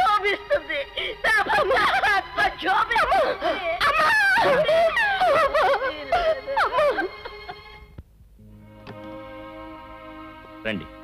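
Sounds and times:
woman wailing in grief: 0.0 - 7.4.

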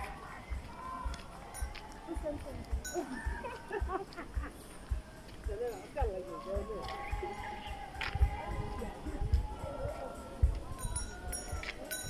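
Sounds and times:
footsteps on dirt track: 0.0 - 11.9
faint voices: 0.0 - 12.0.

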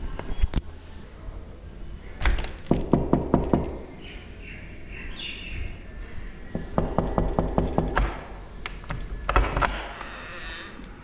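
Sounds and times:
knuckles knocking on wooden door: 2.7 - 3.8, 6.5 - 8.2.

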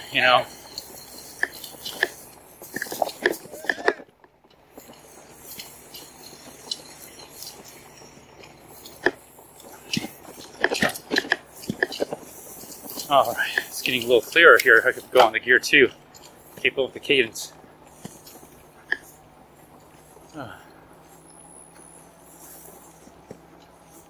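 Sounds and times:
bike tyres crunching over grass: 0.0 - 24.0.

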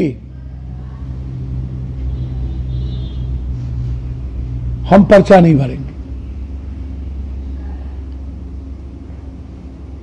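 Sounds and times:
low hum and rumble: 0.0 - 10.0.

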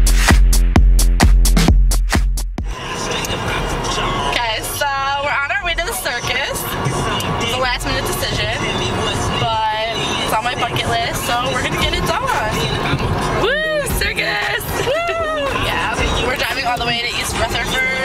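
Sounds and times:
steady low rumble: 0.0 - 18.0
people's voices: 2.7 - 18.0.

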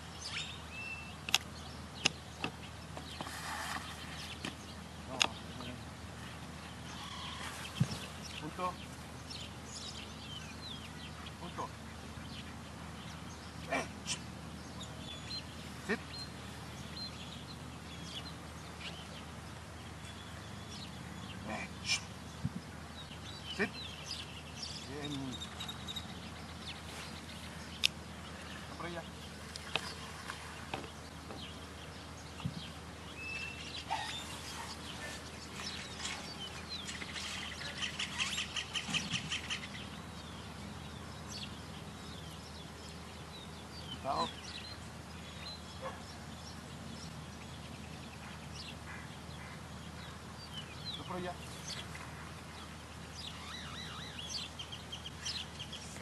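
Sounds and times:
small birds chirping: 0.0 - 56.0
loud animal calls: 6.8 - 7.8
bird chattering: 33.5 - 40.0.

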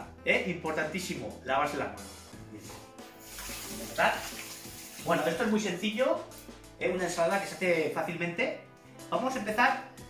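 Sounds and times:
tap water splashing into sink: 3.2 - 5.6.

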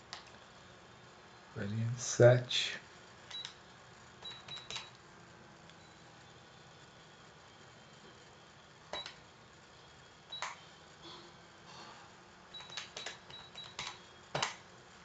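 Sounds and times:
computer mouse clicking: 4.3 - 5.0, 12.6 - 14.6.

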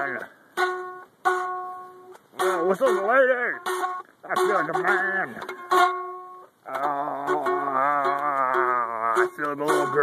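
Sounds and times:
plucked guitar: 0.0 - 10.0
man singing a held note: 6.6 - 10.0.

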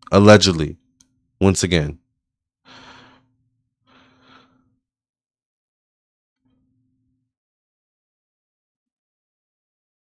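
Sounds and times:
person breathing close to microphone: 2.7 - 4.8.

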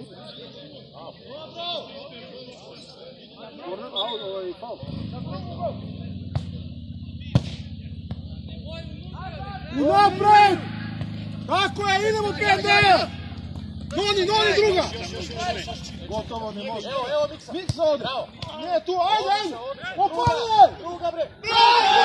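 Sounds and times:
steady low hum: 5.1 - 16.5
men shouting: 8.7 - 17.3, 18.6 - 22.0.

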